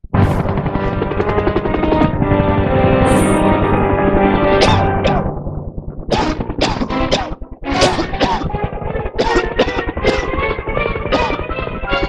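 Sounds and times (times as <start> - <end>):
instrumental music soundtrack: 0.0 - 12.0
helicopter rotor chopping: 0.1 - 12.0.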